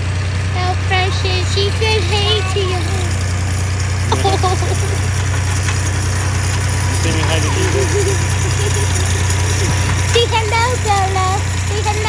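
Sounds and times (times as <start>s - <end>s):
tractor engine droning: 0.0s - 12.0s
people's voices: 0.5s - 12.0s.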